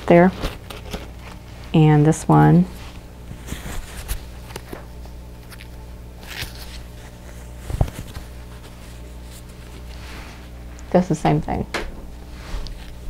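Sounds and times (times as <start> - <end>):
cloth face mask rustling: 0.0 - 10.8, 12.1 - 13.0.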